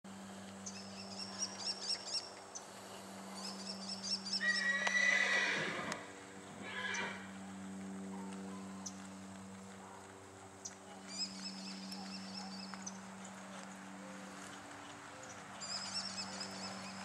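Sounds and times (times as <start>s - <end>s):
horse whinnying: 4.4s - 6.0s, 6.6s - 7.2s.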